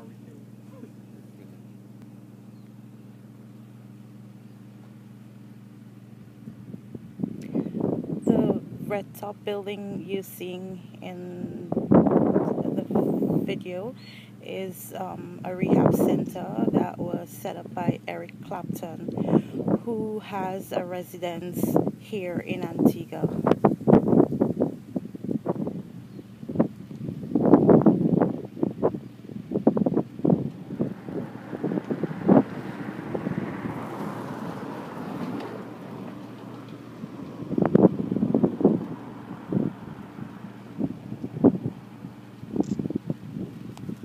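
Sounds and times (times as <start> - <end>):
wind buffeting microphone: 6.4 - 44.0.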